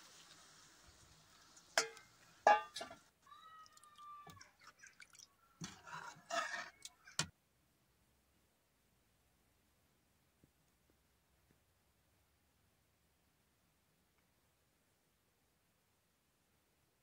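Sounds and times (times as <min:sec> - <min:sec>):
faint sizzle: 0:00.0 - 0:04.6
metal ladle clinking on pot: 0:01.8 - 0:03.0.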